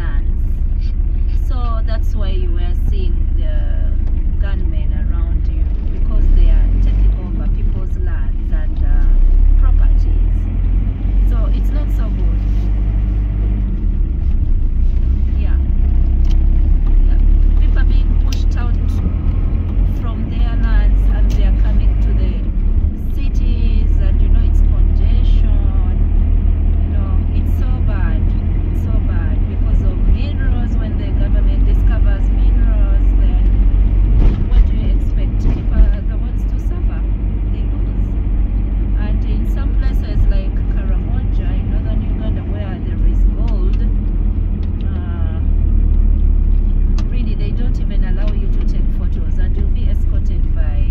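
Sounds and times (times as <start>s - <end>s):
vehicle engine and tyre noise: 0.0s - 50.9s
indistinct voices talking: 15.1s - 26.1s.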